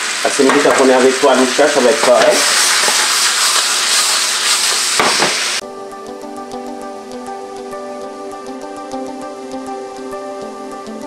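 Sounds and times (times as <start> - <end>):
food sizzling in a skillet: 0.0 - 5.6
knock on skillet: 5.0 - 5.4
music: 5.6 - 11.0.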